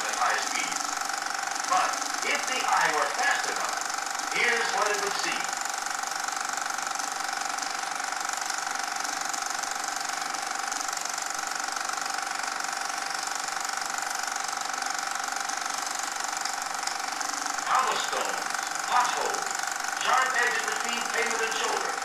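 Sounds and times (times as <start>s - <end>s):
film projector clattering: 0.0s - 22.0s.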